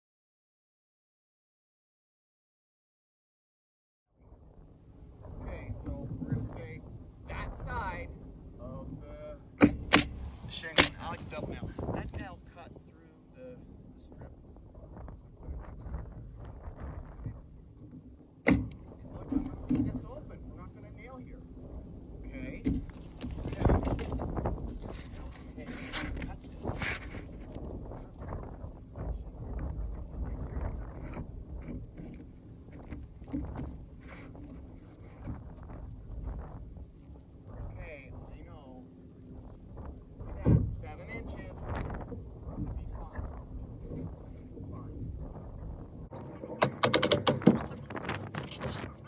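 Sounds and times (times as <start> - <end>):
nail gun shot: 9.6 - 11.1, 18.4 - 18.8.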